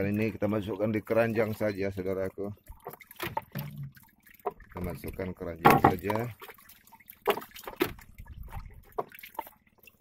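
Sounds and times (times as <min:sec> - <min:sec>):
water dripping: 0:00.0 - 0:10.0.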